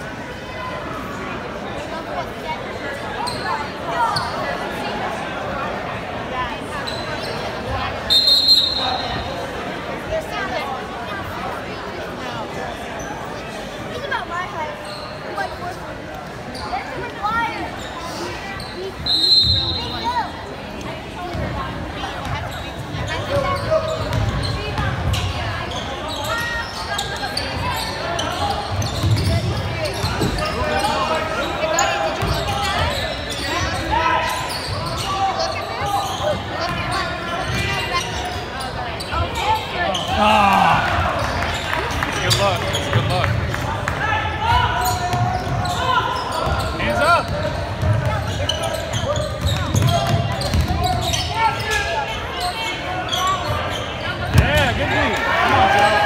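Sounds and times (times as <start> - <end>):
people shouting and chatting: 0.0 - 56.0.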